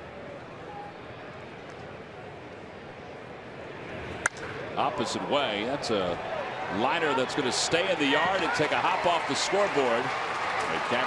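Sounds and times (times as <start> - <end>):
wooden bat cracking ball: 4.2 - 4.6.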